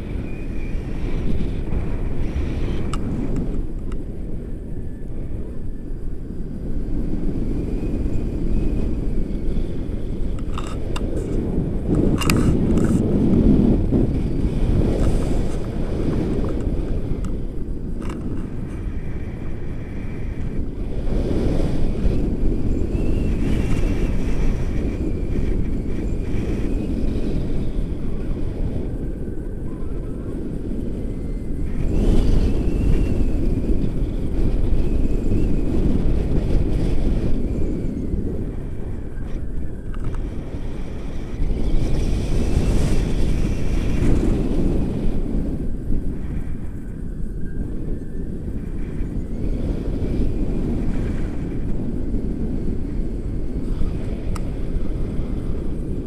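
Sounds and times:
wind rushing over microphone: 0.0s - 56.0s.

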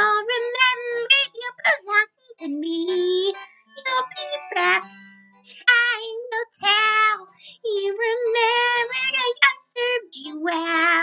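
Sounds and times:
high cartoonish female voice singing: 0.0s - 4.8s, 5.5s - 11.0s.

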